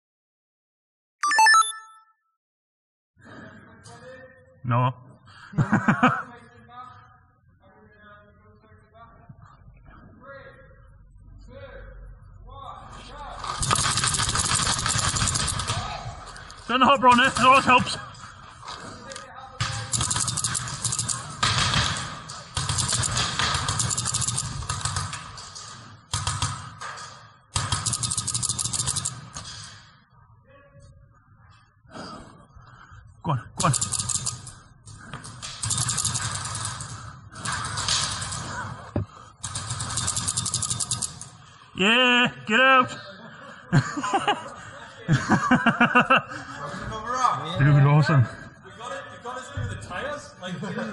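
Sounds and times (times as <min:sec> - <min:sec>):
rapid paintball gunfire: 0:13.5 - 0:16.0, 0:17.0 - 0:17.8, 0:19.6 - 0:25.3, 0:27.5 - 0:29.3, 0:33.6 - 0:34.5, 0:35.4 - 0:38.6, 0:39.4 - 0:41.2.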